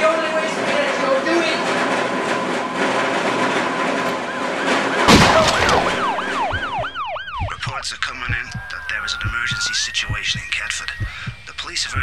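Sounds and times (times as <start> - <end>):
emergency siren wailing: 0.0 - 11.9.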